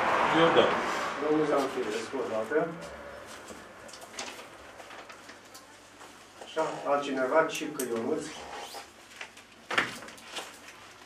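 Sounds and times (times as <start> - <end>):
papers rustling: 3.2 - 7.2, 7.8 - 11.0.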